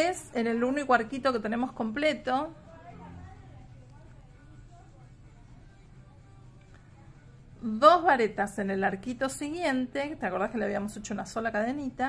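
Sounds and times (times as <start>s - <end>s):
woman speaking: 0.0s - 5.2s, 7.6s - 12.0s
faint background music: 0.0s - 12.0s
low steady hum: 0.0s - 12.0s.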